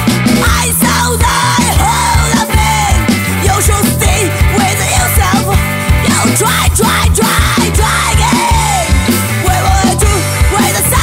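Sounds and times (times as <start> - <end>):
punk rock song: 0.0 - 11.0.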